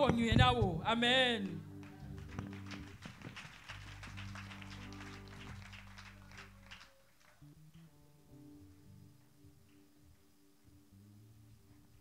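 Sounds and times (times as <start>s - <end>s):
low keyboard chord: 0.8s - 3.0s, 3.6s - 6.7s, 7.4s - 12.0s.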